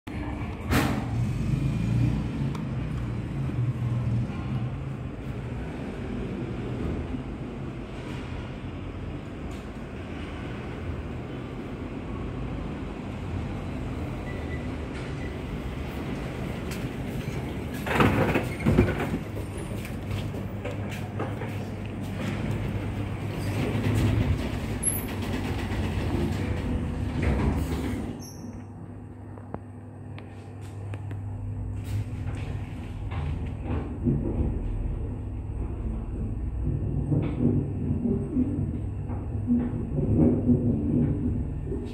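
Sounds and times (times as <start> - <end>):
freight elevator rumbling: 2.7 - 29.5, 31.3 - 41.9.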